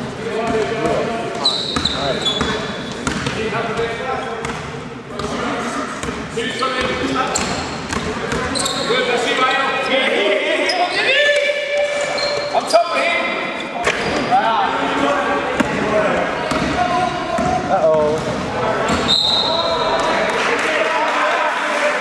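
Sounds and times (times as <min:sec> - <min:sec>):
basketball bouncing on court: 0:00.5 - 0:05.4, 0:06.0 - 0:08.7, 0:16.4 - 0:19.1.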